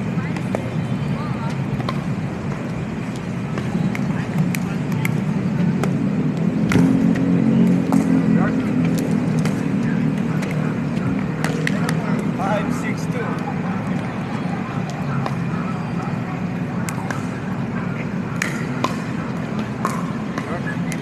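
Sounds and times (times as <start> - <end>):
road traffic rumble: 0.0 - 21.0
pickleball paddles hitting ball: 6.6 - 7.2, 11.4 - 12.3, 18.4 - 21.0.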